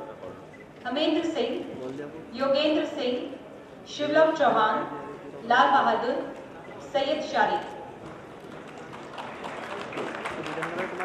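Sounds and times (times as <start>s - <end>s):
audience applauding: 8.4s - 11.0s.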